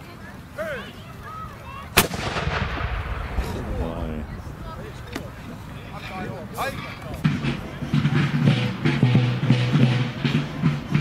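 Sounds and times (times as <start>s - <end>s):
cannon shot with long echo: 2.0s - 5.4s.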